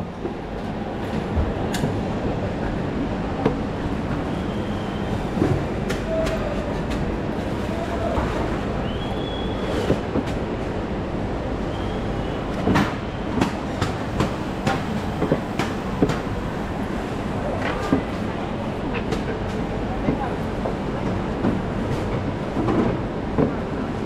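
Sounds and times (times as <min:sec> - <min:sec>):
market hall din: 0:00.0 - 0:24.0.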